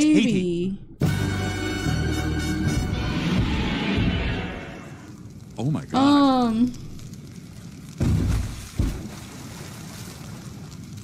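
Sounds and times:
heavy deep footfalls: 8.0 - 9.2.

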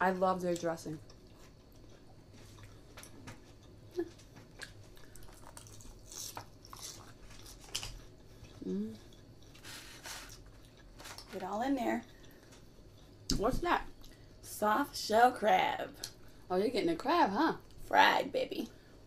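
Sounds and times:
chewing salad: 0.4 - 14.2.

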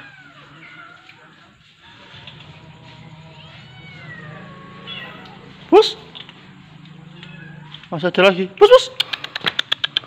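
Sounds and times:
kittens meowing: 0.0 - 8.2.

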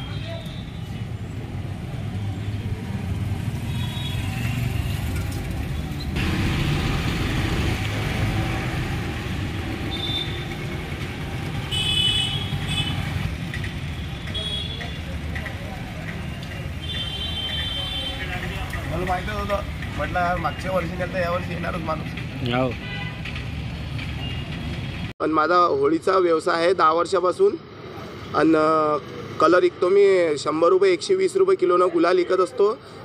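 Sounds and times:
rumble of passing vehicles: 0.0 - 33.0.

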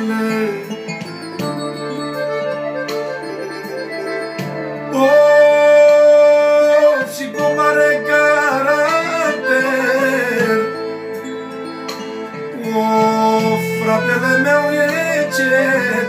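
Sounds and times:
man singing: 0.0 - 1.2, 4.9 - 11.2, 12.5 - 16.0
piano accordion music: 0.0 - 16.0.

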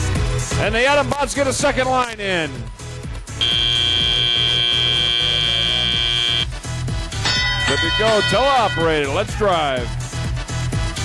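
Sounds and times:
arena music with bass line: 0.0 - 11.0
buzzer steady tone: 3.4 - 6.5.

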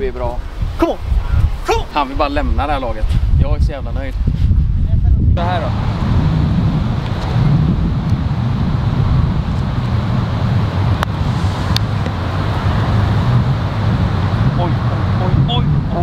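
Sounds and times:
low rumble: 3.2 - 16.0.

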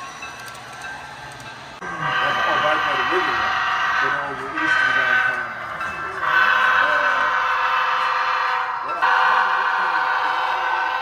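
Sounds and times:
people talking: 1.8 - 7.4
model train horn blasts: 6.2 - 11.0.

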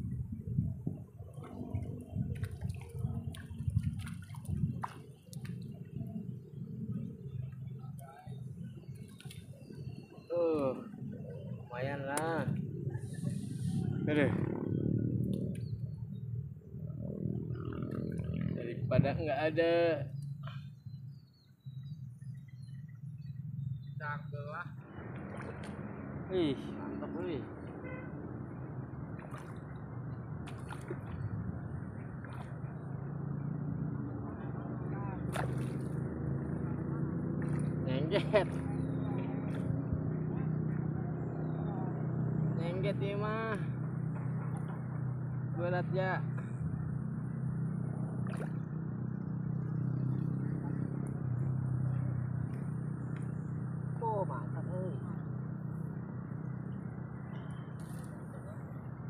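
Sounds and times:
fish splashing at water surface: 29.1 - 31.4, 32.1 - 33.0, 35.2 - 36.1, 48.2 - 48.8.

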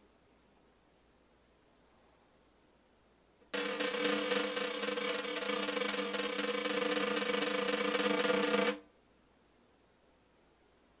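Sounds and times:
snare drum roll: 3.5 - 8.8.

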